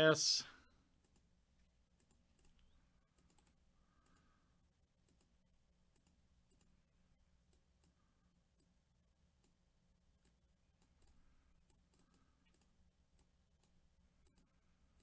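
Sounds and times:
computer mouse and keyboard clicks: 0:01.0 - 0:01.3, 0:02.0 - 0:04.3, 0:05.0 - 0:06.8, 0:10.2 - 0:15.0.

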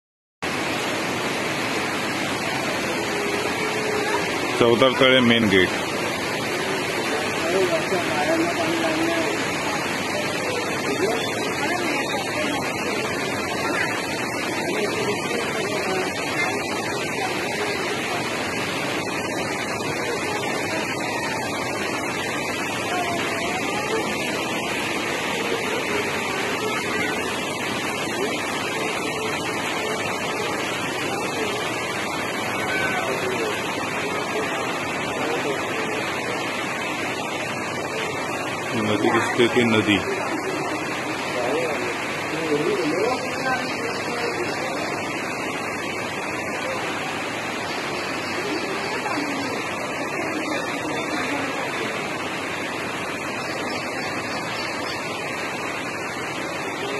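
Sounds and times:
water rushing: 0:00.4 - 0:56.9
faint voices: 0:00.5 - 0:56.9.

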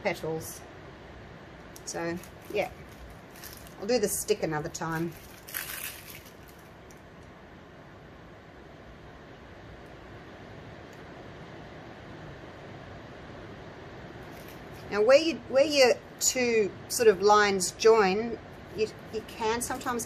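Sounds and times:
room hiss: 0:00.0 - 0:20.0
plastic piping bag rustling: 0:01.8 - 0:07.1, 0:14.2 - 0:14.9, 0:18.7 - 0:20.0.

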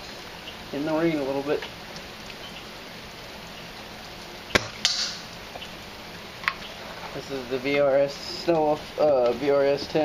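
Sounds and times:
airsoft rifle shot crack: 0:04.5 - 0:05.2.

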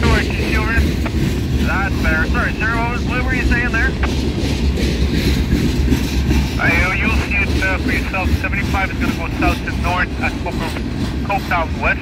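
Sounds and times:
freight train wheels rumbling on rail: 0:00.0 - 0:12.0.

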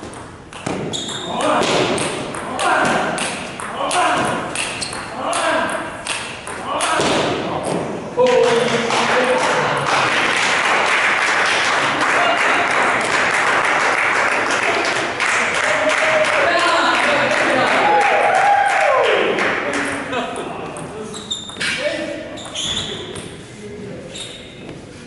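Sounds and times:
steady background noise: 0:00.0 - 0:25.0
table tennis balls clicking: 0:02.0 - 0:06.9.

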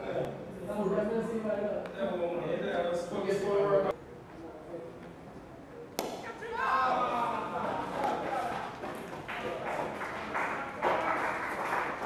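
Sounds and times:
cricket bat hitting ball: 0:06.0 - 0:06.4
people shouting: 0:06.3 - 0:07.6.

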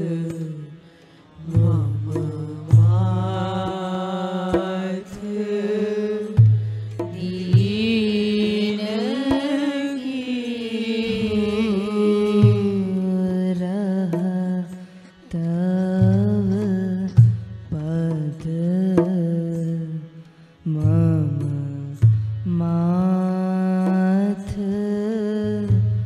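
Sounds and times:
devotional singing: 0:00.0 - 0:26.0
instrumental accompaniment: 0:00.0 - 0:26.0
percussion strikes: 0:00.0 - 0:26.0.

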